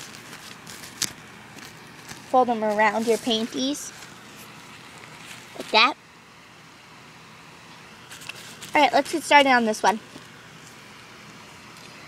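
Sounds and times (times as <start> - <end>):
fabric rustling: 0.0 - 5.8, 8.1 - 9.4.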